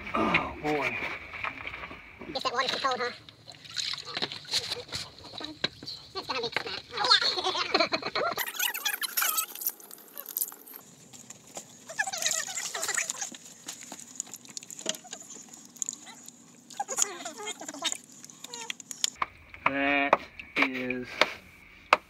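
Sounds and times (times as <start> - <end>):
muddy water splashing and sloshing: 0.6 - 19.2.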